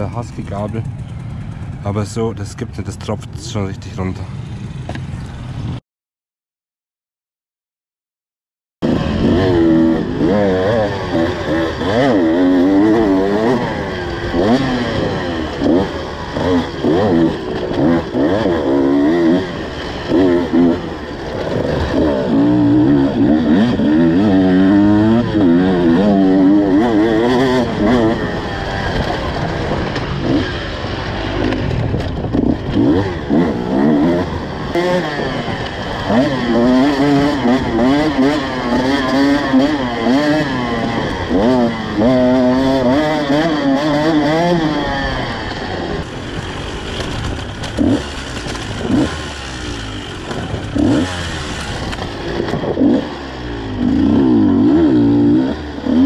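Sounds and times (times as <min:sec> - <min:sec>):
motorcycle engine revving: 0:08.8 - 0:56.0.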